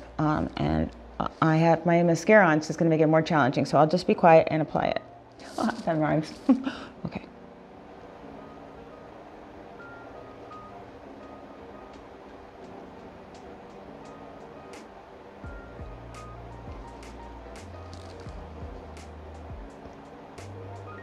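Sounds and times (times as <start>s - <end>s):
soft instrumental music: 2.8s - 21.0s
deep bass: 15.5s - 21.0s.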